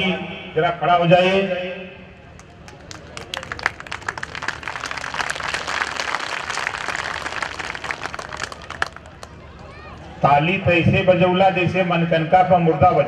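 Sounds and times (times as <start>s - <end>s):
crowd applauding: 2.4s - 9.8s.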